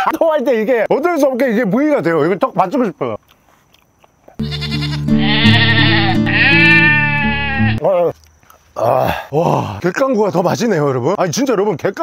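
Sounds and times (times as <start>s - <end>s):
goat bleating sound effect: 4.4s - 7.8s
music: 4.4s - 7.8s.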